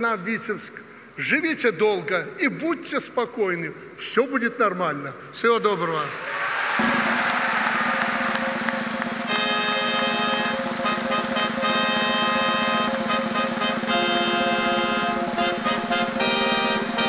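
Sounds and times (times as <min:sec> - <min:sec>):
audience applauding: 0:06.0 - 0:17.0
loud sustained music chords: 0:06.8 - 0:17.0.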